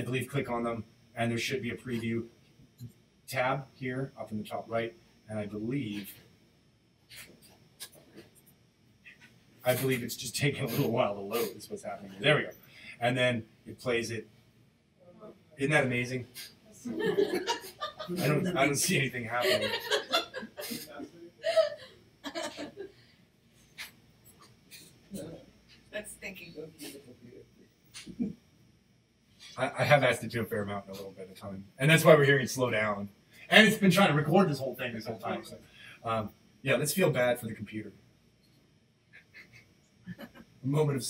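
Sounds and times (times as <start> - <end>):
breaths: 12.6 - 13.0, 35.6 - 36.0
murmured speech: 18.1 - 19.9.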